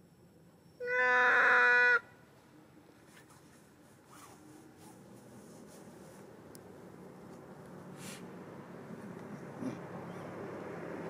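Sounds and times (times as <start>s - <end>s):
monkey coo call: 0.8s - 2.1s.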